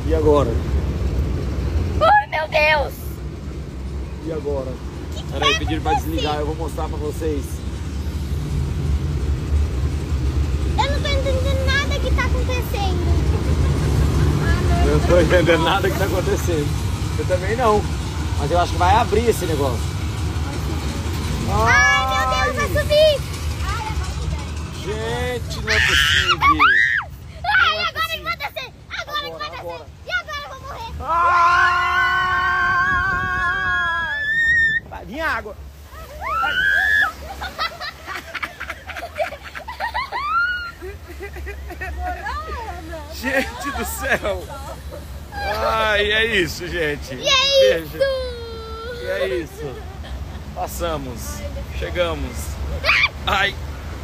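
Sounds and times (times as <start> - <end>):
rushing water: 0.0 - 54.0
wind: 0.0 - 54.0
riders screaming: 25.6 - 27.2, 31.0 - 34.9, 35.9 - 37.4.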